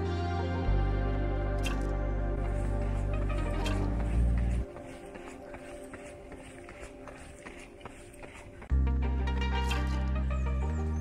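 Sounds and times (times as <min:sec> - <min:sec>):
faint music: 0:00.0 - 0:11.0
running footsteps on asphalt: 0:02.5 - 0:08.8.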